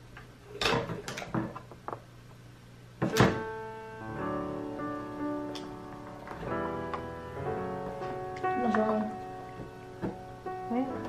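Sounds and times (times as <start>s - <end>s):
instrumental background music: 3.0s - 11.0s.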